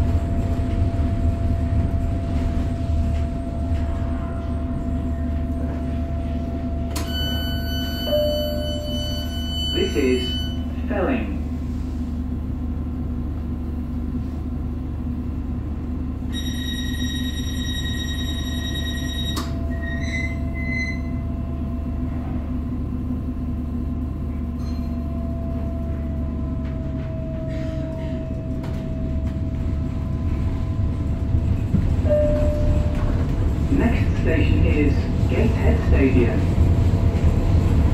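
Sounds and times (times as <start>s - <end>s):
train car rumbling: 0.0s - 37.9s.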